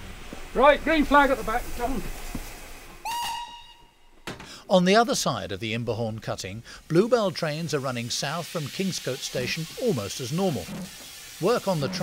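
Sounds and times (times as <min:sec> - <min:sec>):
steam locomotive whistle blast: 0:03.0 - 0:04.1.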